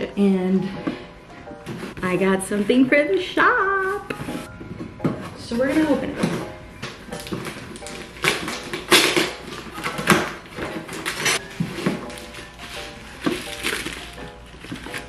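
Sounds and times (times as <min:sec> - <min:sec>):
light background music: 0:00.0 - 0:15.0
cardboard box being unpacked: 0:05.3 - 0:15.0.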